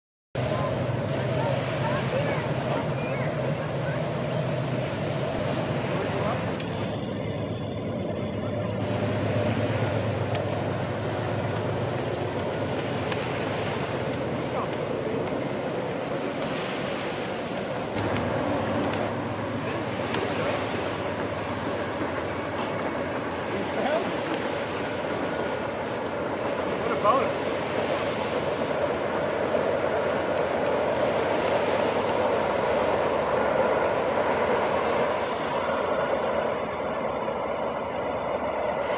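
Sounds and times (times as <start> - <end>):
diesel locomotive drone: 0.4 - 38.9
train rumbling on rails: 0.4 - 38.9.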